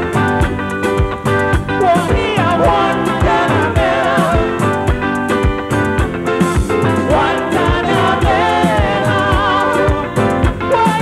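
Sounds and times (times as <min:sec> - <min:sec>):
keyboard chords: 0:00.0 - 0:11.0
voices singing with vibrato: 0:01.3 - 0:11.0.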